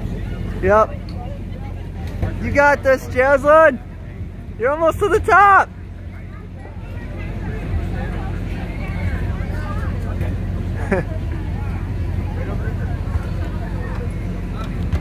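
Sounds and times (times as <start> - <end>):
chatter of many people: 0.0 - 15.0
low engine hum: 0.0 - 15.0.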